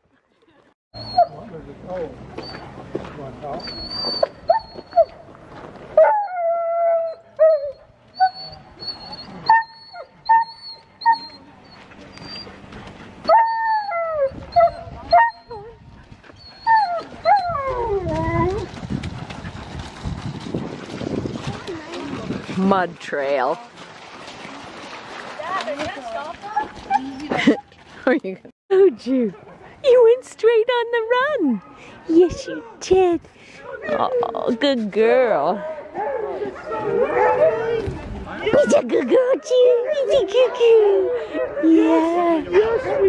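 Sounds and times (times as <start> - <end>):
sled dogs howling and yelping: 6.0 - 11.4, 13.2 - 18.7, 35.6 - 37.8, 38.4 - 43.0.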